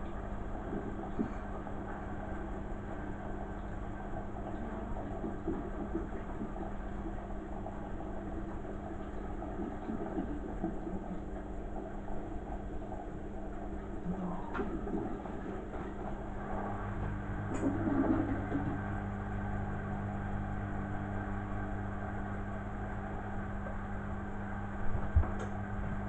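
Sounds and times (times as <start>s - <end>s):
washing machine humming and rumbling: 0.0s - 26.0s.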